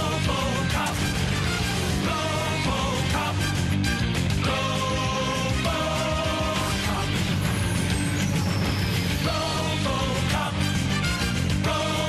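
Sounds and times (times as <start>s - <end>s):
bass and beat: 0.0s - 12.0s.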